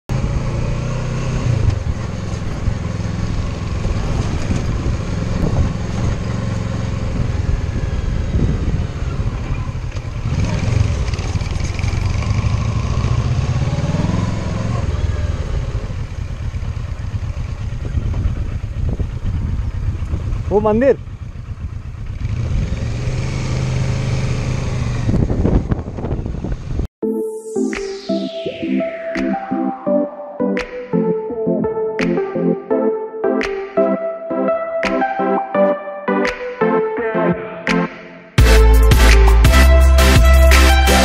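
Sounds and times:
motorcycle engine revving: 0:00.1 - 0:26.9
steady riding noise: 0:00.1 - 0:26.9.

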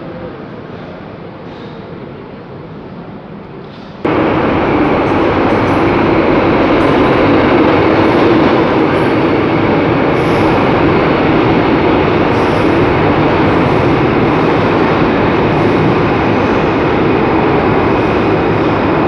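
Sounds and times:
high squeals of train: 0:00.0 - 0:19.0
metro train rumbling: 0:00.0 - 0:19.0
station platform ambience: 0:00.0 - 0:19.0.

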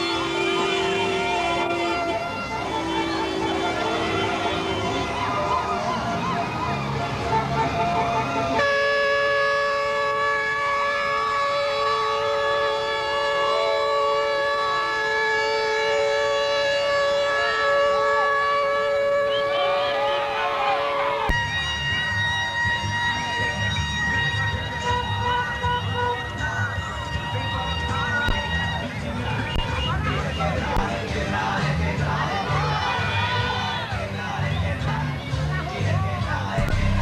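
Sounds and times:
vehicle horn steady tone: 0:00.0 - 0:05.3, 0:07.1 - 0:20.0, 0:21.3 - 0:28.4
second horn tone: 0:07.3 - 0:20.0, 0:36.6 - 0:37.0.

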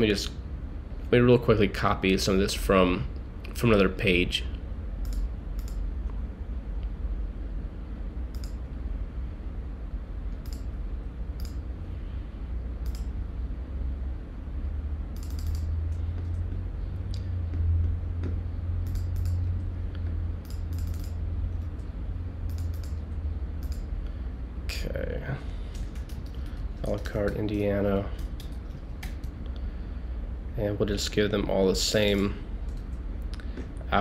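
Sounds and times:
steady low hum: 0:00.0 - 0:34.0
mouse and keyboard clicks: 0:15.2 - 0:16.5, 0:18.2 - 0:19.5, 0:20.4 - 0:21.2, 0:22.5 - 0:23.0, 0:23.6 - 0:23.9.

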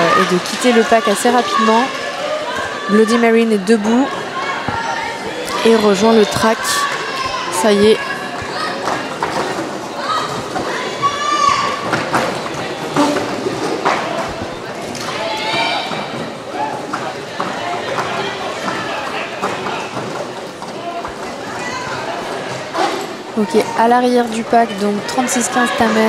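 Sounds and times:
players shouting: 0:00.0 - 0:26.0.

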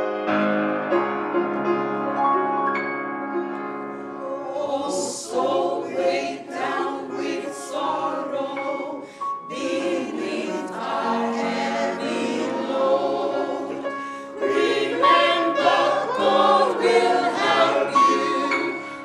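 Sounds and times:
choir singing a hymn: 0:04.2 - 0:19.0.

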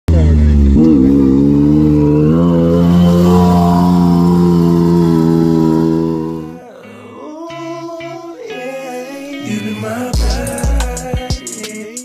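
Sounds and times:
utility vehicle engine running hard: 0:00.1 - 0:06.5.

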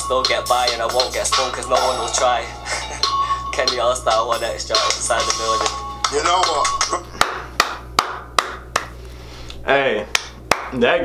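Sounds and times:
person clapping slowly: 0:06.8 - 0:09.0, 0:10.1 - 0:10.8.

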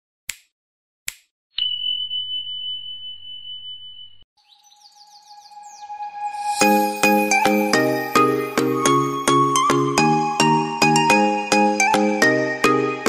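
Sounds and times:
steady high beep: 0:05.8 - 0:08.5.

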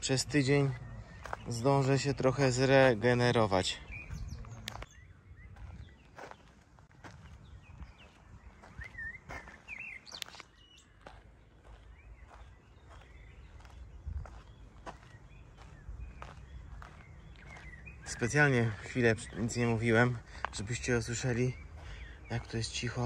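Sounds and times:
birds chirping: 0:00.0 - 0:23.0
soft footsteps: 0:00.6 - 0:01.8, 0:05.5 - 0:20.7.

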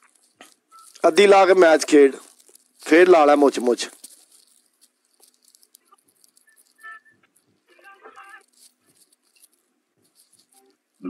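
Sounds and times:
high-pitched tone: 0:06.5 - 0:08.4.

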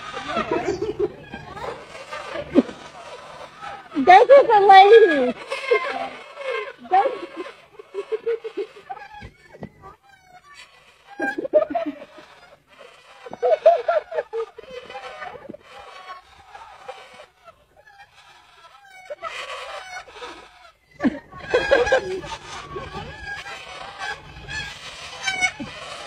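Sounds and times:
bird clucking calls: 0:00.0 - 0:26.0.

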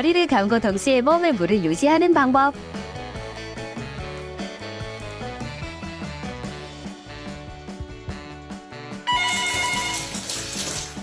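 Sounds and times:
background music: 0:00.0 - 0:11.0
loud ringing electronic tone: 0:09.1 - 0:10.4.

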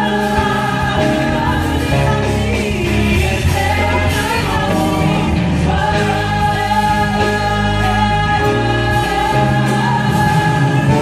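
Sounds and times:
gospel choir singing in harmony: 0:00.0 - 0:11.0
steady low bass: 0:00.0 - 0:11.0.

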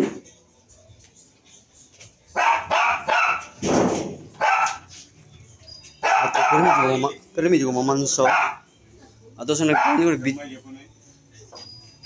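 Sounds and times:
dog barking: 0:02.4 - 0:03.6, 0:04.4 - 0:04.9, 0:06.0 - 0:07.0, 0:08.2 - 0:08.7, 0:09.7 - 0:10.2.

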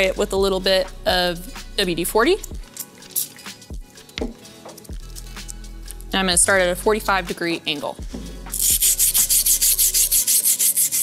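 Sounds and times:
soft background music: 0:00.0 - 0:11.0
aerosol spray hiss: 0:08.5 - 0:11.0.

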